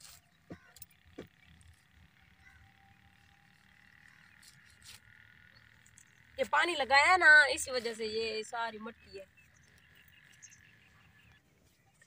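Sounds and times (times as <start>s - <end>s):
frogs calling: 8.2s - 11.4s.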